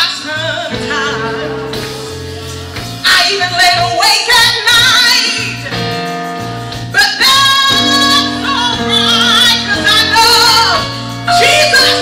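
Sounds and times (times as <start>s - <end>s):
woman singing gospel: 0.0s - 2.1s, 3.0s - 6.0s, 6.9s - 12.0s
electric keyboard chords: 0.0s - 12.0s.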